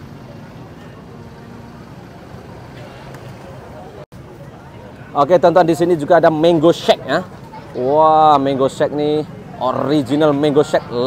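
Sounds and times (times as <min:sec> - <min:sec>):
shoppers chatting: 0:00.0 - 0:11.0.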